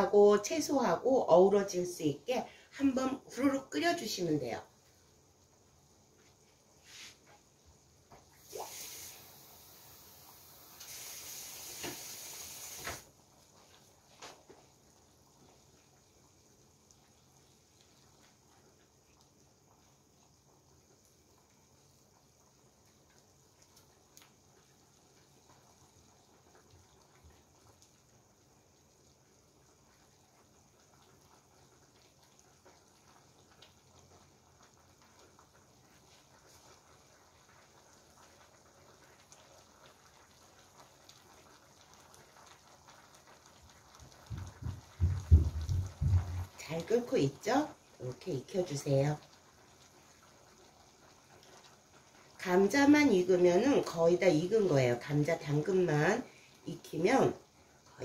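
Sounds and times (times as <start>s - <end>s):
broth simmering in a pan: 0.0s - 58.0s
loud hiss: 8.4s - 13.1s.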